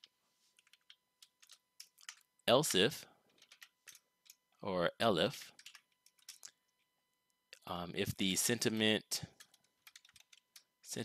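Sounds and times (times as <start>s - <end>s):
computer keyboard typing: 0.0s - 2.3s, 3.3s - 4.4s, 5.4s - 6.6s, 9.3s - 10.8s.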